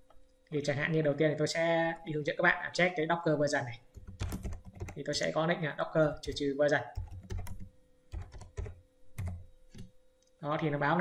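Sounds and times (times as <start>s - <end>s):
computer keyboard typing: 3.9s - 5.3s, 6.0s - 9.9s.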